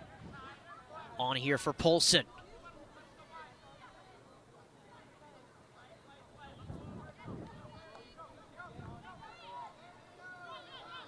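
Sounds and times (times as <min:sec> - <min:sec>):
faint players and coach shouting: 0:07.6 - 0:11.0.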